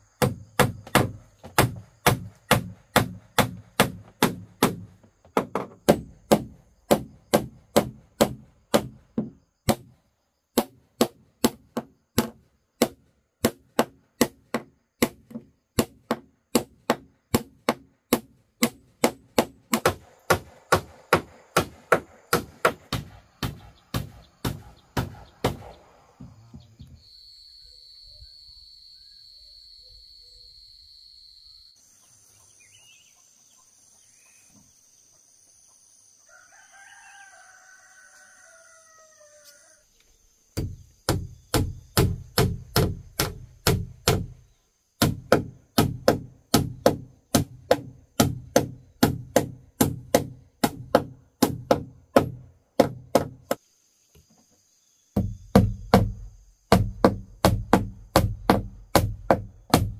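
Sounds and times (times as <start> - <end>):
hammer driving nails into wood: 0.2 - 9.9, 10.6 - 25.8, 40.6 - 44.4, 45.0 - 53.6, 55.2 - 59.9
high-pitched insect drone: 26.9 - 34.1
rooster crowing: 36.2 - 39.9.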